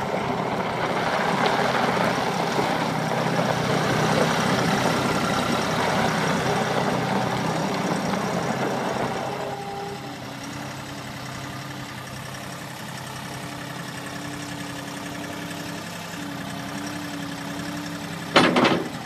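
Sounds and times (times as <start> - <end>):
loader diesel engine running: 0.0 - 19.0.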